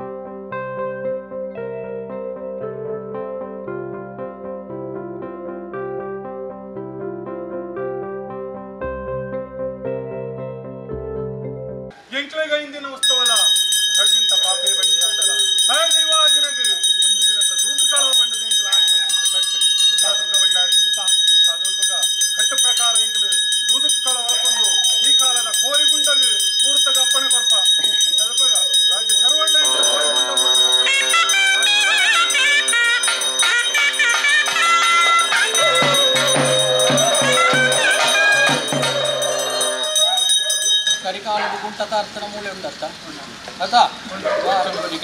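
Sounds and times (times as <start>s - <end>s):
person speaking: 11.9s - 40.3s
bells ringing: 13.0s - 41.5s
rhythmic percussion: 13.0s - 42.4s
low held wind instrument tone: 29.7s - 40.3s.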